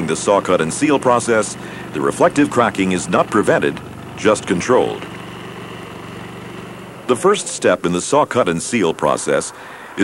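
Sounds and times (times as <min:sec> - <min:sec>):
small gasoline engine running: 0:00.0 - 0:09.1
saw blade cutting asphalt: 0:00.0 - 0:09.6.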